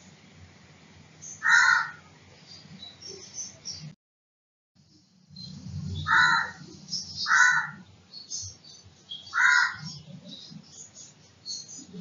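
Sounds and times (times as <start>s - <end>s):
loud bird calls: 1.2s - 3.9s, 5.4s - 12.0s
faint high bird chirping: 1.2s - 4.0s, 5.0s - 12.0s.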